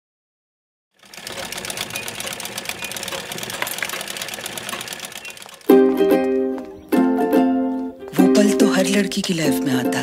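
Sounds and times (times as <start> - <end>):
sewing machine clattering: 1.0 - 5.7.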